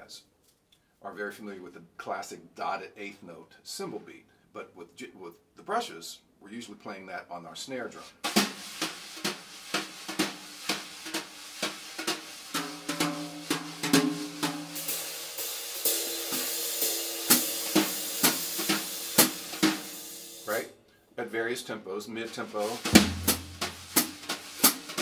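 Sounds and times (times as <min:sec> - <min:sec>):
brushes on snare drum: 0:07.9 - 0:20.7, 0:22.1 - 0:25.0.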